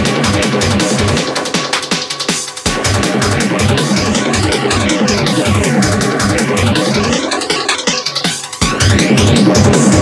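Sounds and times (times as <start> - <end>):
fast kick drum: 0.0 - 10.0
distorted synth layers: 2.7 - 10.0.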